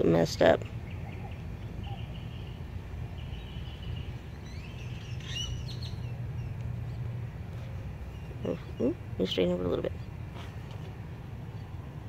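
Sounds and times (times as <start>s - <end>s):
birds chirping faintly: 0.0s - 12.0s
steady low hum: 0.0s - 12.0s.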